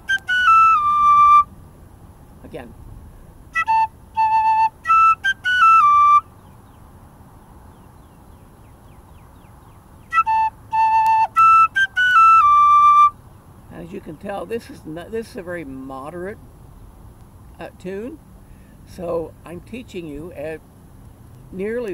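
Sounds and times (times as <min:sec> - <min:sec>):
tin whistle playing: 0:00.0 - 0:01.5, 0:03.6 - 0:06.3, 0:10.1 - 0:13.2.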